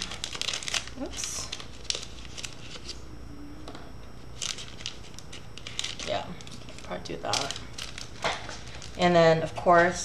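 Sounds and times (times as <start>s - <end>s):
cardboard packet crackly rustles: 0.0s - 3.0s, 4.2s - 10.0s.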